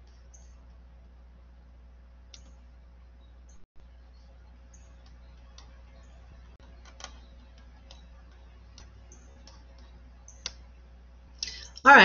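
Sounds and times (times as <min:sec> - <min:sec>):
steady low hum: 0:00.0 - 0:12.0
faint clicks: 0:02.3 - 0:02.6, 0:04.8 - 0:10.7.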